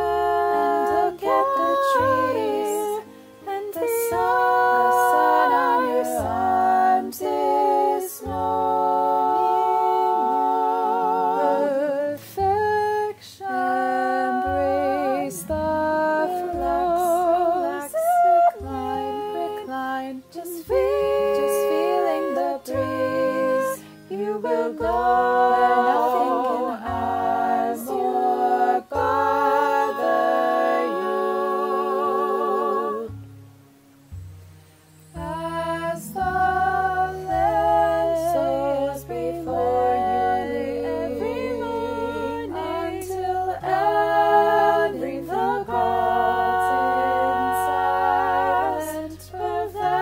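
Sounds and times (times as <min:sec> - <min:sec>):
vocal quartet singing in harmony: 0:00.0 - 0:50.0.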